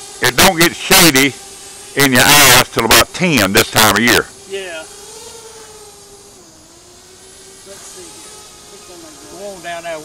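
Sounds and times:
drone propellers humming: 0:00.0 - 0:10.0.

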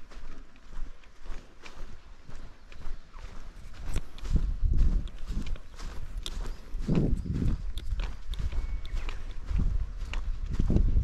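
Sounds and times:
footsteps on dry grass: 0:00.0 - 0:11.0.

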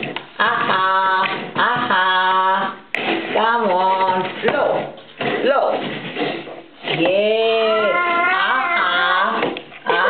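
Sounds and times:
young child whining: 0:07.8 - 0:09.1.

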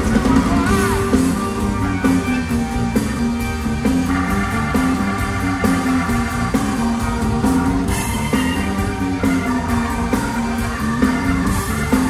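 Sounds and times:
bass line: 0:00.0 - 0:12.0
drum beat: 0:00.0 - 0:12.0
electric guitar: 0:00.0 - 0:12.0.

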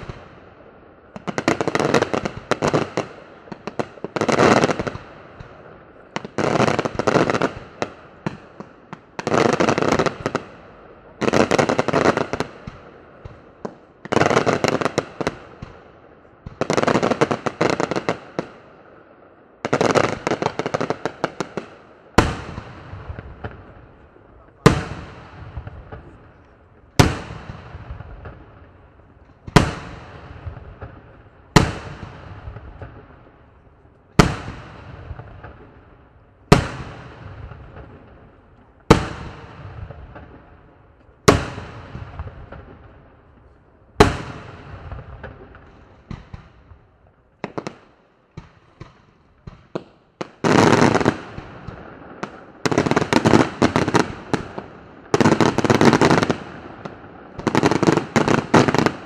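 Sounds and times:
fireworks booming: 0:00.0 - 0:47.7
fireworks crackling: 0:00.0 - 0:59.0.

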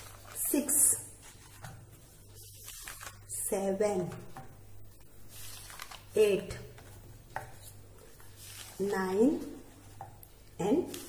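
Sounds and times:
woman counting: 0:00.4 - 0:01.2, 0:03.3 - 0:04.4, 0:06.1 - 0:06.8, 0:08.8 - 0:09.7, 0:10.6 - 0:11.0.

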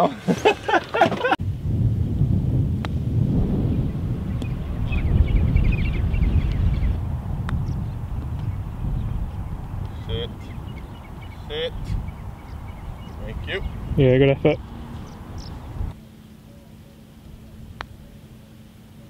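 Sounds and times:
people laughing: 0:00.0 - 0:01.4, 0:14.2 - 0:14.6
wind rumbling on microphone: 0:00.4 - 0:16.0.

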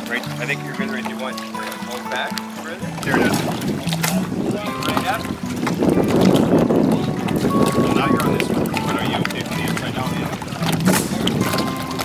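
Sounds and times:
faint indistinct voices: 0:00.0 - 0:12.0
wind buffeting microphone: 0:02.8 - 0:12.0.

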